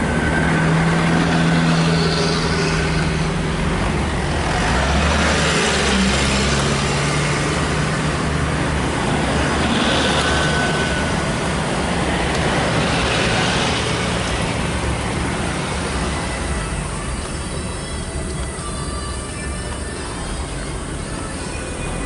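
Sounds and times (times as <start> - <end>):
tyre and road noise: 0.0 - 22.0
vehicle engine hum: 0.0 - 22.0.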